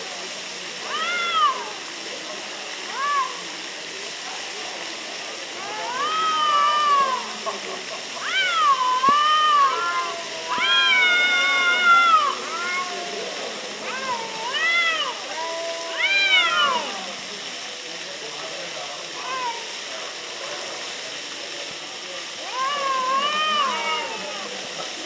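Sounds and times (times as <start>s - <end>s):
cats yowling: 0.8s - 1.8s, 2.9s - 3.4s, 5.5s - 7.4s, 8.2s - 17.3s, 19.2s - 19.8s, 22.4s - 24.7s.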